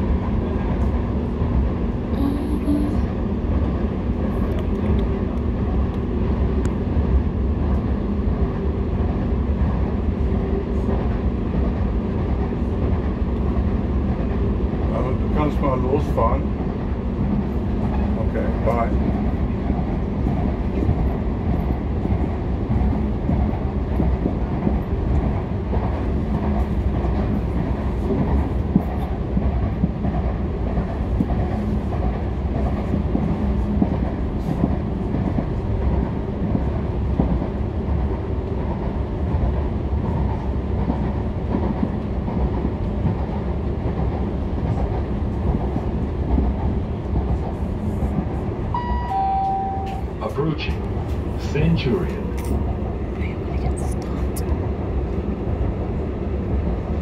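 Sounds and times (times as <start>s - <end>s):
train rumble inside carriage: 0.0s - 57.0s
falling two-note tone: 48.8s - 50.1s.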